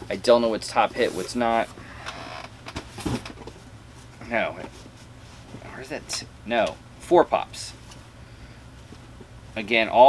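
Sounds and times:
cardboard rustling and scraping: 0.8s - 1.7s.

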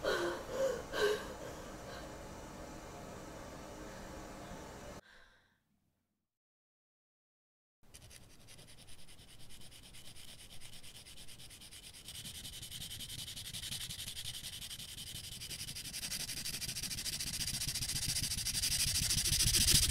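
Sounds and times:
dry rasping rub: 7.9s - 19.9s.

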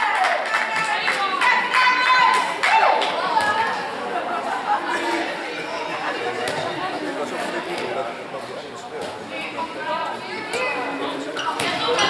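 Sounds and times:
voices chattering and calling out: 0.0s - 12.0s.

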